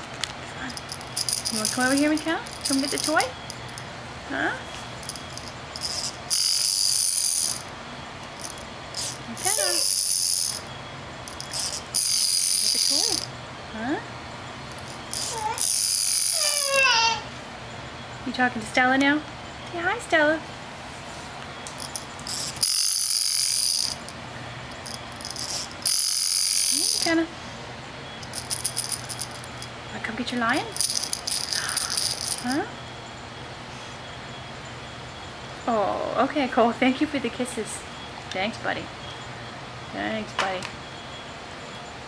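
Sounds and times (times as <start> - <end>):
toy rattle shaking: 0.6 - 3.9, 5.0 - 7.7, 8.4 - 10.7, 11.3 - 13.3, 14.9 - 16.7, 21.8 - 27.3, 28.2 - 29.8, 30.7 - 32.6.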